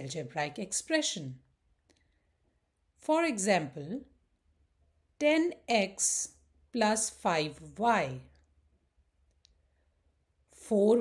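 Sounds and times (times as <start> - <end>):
person speaking: 0.0 - 1.5.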